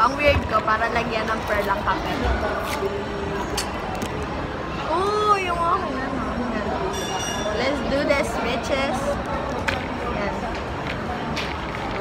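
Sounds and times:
cafe background noise: 0.0 - 12.0.

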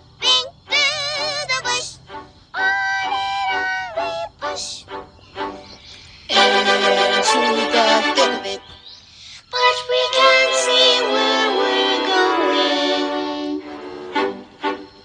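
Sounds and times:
pitch-shifted cartoon song: 0.0 - 8.8, 9.4 - 15.0
loud sustained chord: 6.3 - 8.7.

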